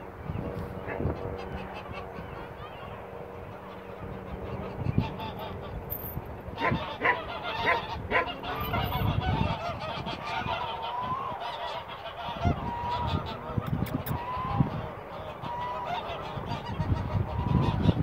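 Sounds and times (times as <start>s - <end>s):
geese honking: 0.3s - 18.0s.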